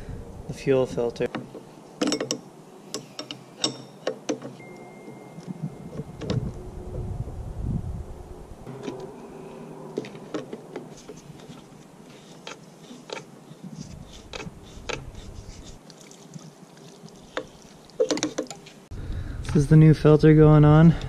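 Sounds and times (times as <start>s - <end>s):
metal wrenches clinking on fitting: 2.0s - 2.4s, 3.0s - 5.2s
low rumble: 5.5s - 11.4s.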